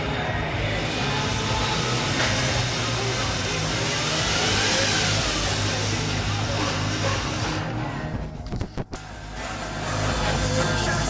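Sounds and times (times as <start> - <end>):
car stereo sound: 0.0 - 11.0.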